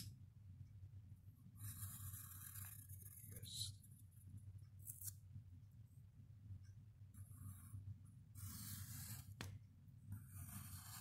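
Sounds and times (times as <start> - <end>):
pencil scratching on paper: 1.6 - 3.5, 7.2 - 7.8, 8.4 - 9.5, 10.1 - 11.0.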